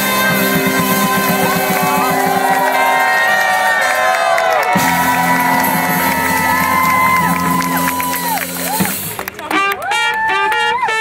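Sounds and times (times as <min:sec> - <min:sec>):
bass line: 0:00.0 - 0:10.9
crowd cheering: 0:00.0 - 0:11.0
live band playing: 0:00.0 - 0:11.0
trumpet: 0:00.0 - 0:11.0.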